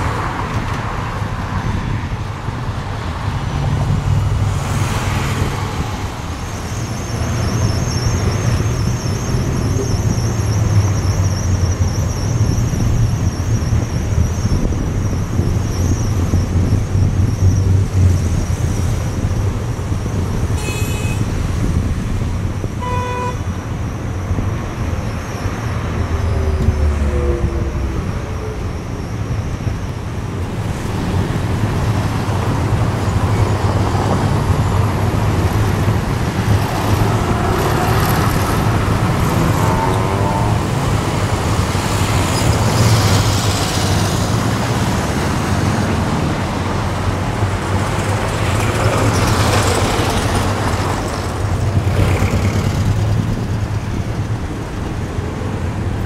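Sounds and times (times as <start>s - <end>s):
traffic rumble: 0.0s - 56.0s
car horn toot: 20.6s - 21.4s, 22.8s - 23.5s.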